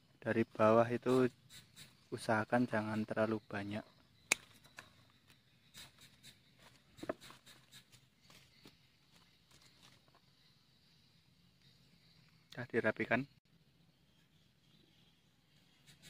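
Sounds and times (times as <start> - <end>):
pruning shears snipping: 4.3 - 4.8.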